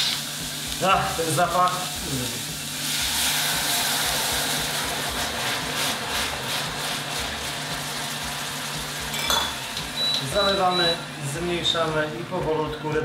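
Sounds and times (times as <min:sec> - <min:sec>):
wine hissing in hot pot: 0:00.0 - 0:11.8.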